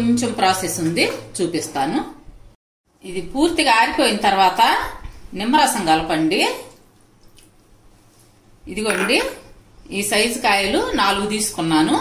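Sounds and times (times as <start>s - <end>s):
woman speaking: 0.0s - 2.2s, 3.0s - 6.8s, 8.7s - 12.0s.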